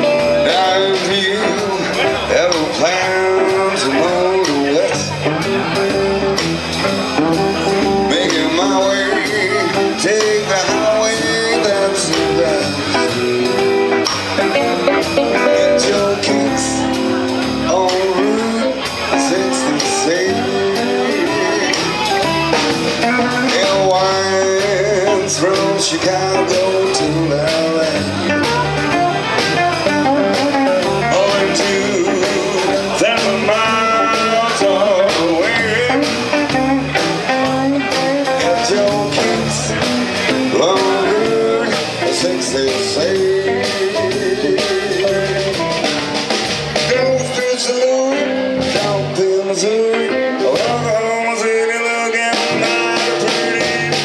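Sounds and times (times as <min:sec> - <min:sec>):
bass guitar: 0:00.0 - 0:54.0
blues band playing shuffle: 0:00.0 - 0:54.0
blues harmonica bending notes: 0:00.0 - 0:54.0
drum kit steady beat: 0:00.0 - 0:54.0
electric guitars: 0:00.0 - 0:54.0.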